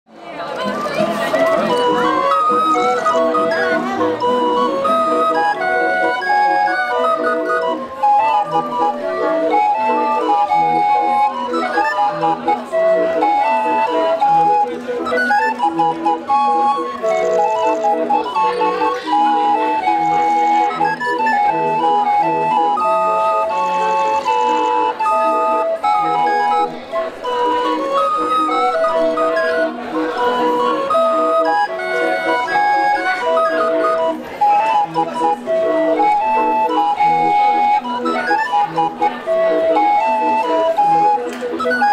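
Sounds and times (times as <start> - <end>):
barrel organ playing a tune: 0.6 - 41.9.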